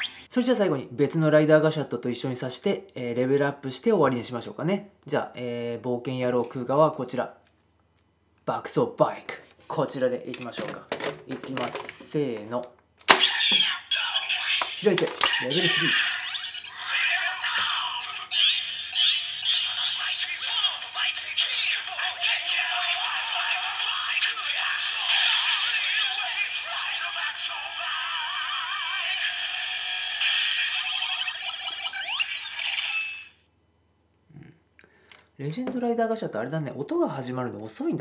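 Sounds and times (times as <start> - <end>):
recorded voice calls: 0.0 - 0.3, 10.3 - 33.4
toy speaker electronic music: 0.0 - 0.3, 13.1 - 33.4.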